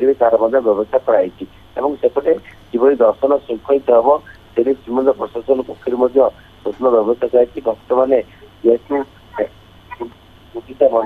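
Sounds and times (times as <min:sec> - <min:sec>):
person talking over telephone: 0:00.0 - 0:11.0.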